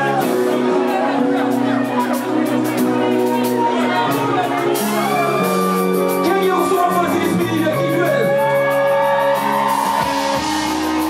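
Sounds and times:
live band playing held chords: 0.0 - 11.0.

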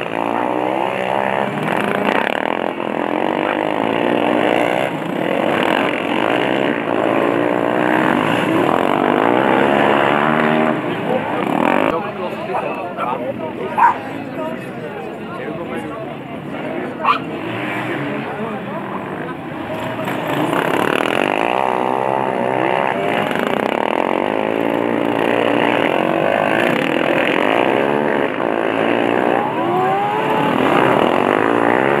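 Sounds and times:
racing lawnmower engines revving: 0.0 - 32.0.

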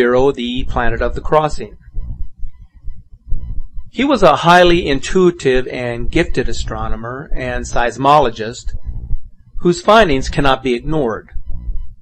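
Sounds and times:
pulsing deep bass soundtrack: 0.6 - 12.0.

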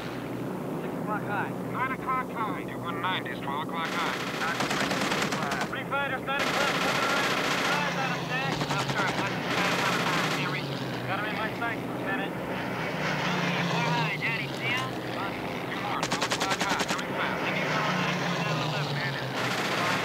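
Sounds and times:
piston engines droning: 0.0 - 20.0
machine-gun fire: 3.8 - 5.8, 6.4 - 10.6, 16.0 - 17.0, 19.3 - 20.0
men shouting: 13.0 - 16.1.

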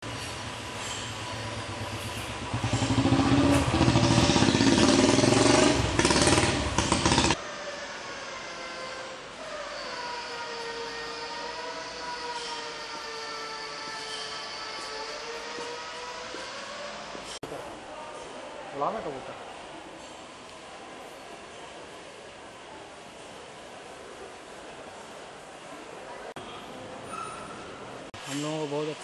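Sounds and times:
loud engine: 0.0 - 7.4, 13.8 - 17.4.

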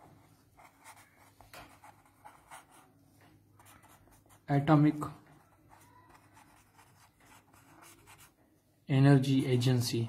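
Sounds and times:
pen writing on paper: 0.0 - 2.9, 3.6 - 4.4, 5.7 - 8.3.

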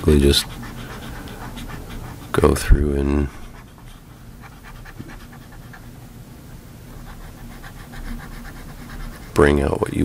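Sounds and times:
stylus scratching on pen tablet: 0.0 - 5.9, 6.9 - 10.0.

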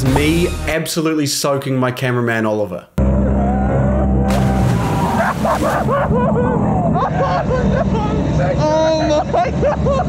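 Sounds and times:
background music with bass line: 0.0 - 0.9.

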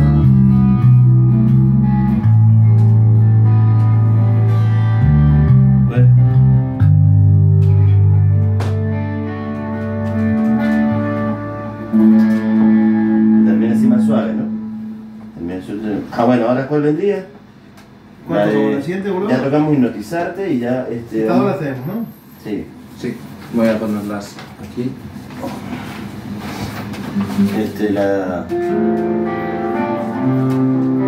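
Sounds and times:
electric guitars: 0.0 - 16.1, 26.2 - 31.0
electric bass notes: 0.0 - 19.9, 26.2 - 31.0.

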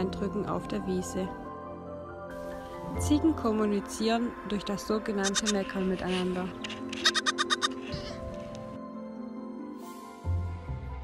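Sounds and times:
soft background music: 0.0 - 11.0
goat kid bleating: 7.0 - 8.2.

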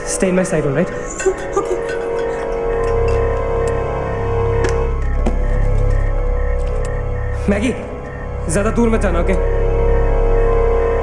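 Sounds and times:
deep low drone: 0.0 - 11.0.

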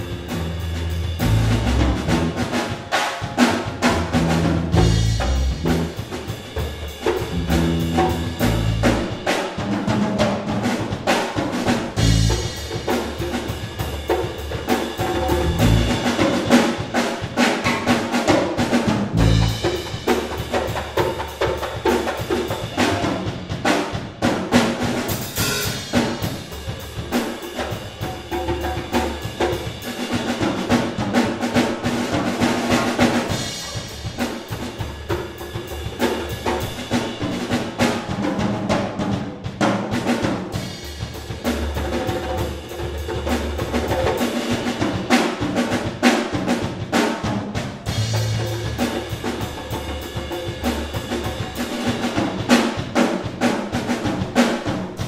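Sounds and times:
drum kit and percussion rhythm: 0.0 - 55.0
jazz big band playing: 0.0 - 55.0.

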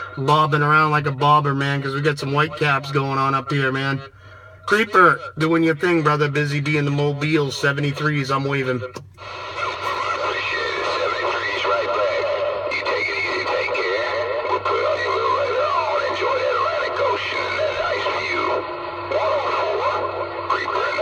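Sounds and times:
steady humming tones: 0.0 - 21.0
garbled warbling radio signal: 9.2 - 21.0.

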